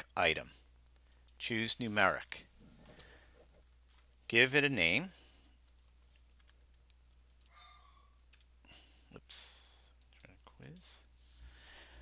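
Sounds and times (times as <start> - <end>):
computer keyboard typing: 5.4 - 8.5.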